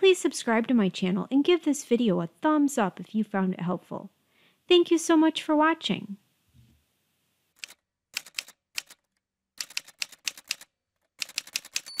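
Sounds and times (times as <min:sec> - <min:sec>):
typewriter keys clacking: 0:07.6 - 0:12.0
carriage-return bell: 0:11.8 - 0:12.0.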